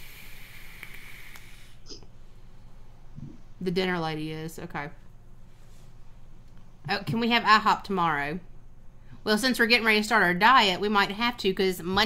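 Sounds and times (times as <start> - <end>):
e-cigarette draw hissing: 0.0 - 2.0.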